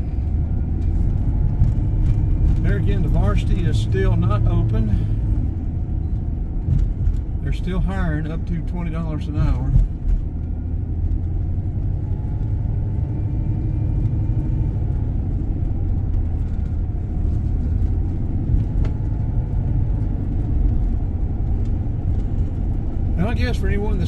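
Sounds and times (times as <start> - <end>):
car cabin road and engine rumble: 0.0 - 24.0.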